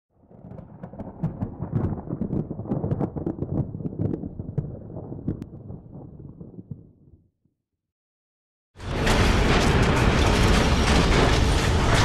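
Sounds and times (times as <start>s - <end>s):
deep rumble with sharp crackles: 0.1s - 7.3s, 8.8s - 12.0s.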